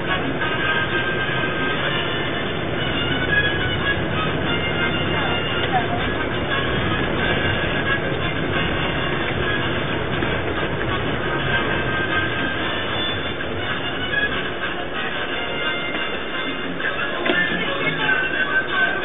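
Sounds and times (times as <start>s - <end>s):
bus rumble and road noise: 0.0s - 19.0s
music playing: 0.0s - 19.0s.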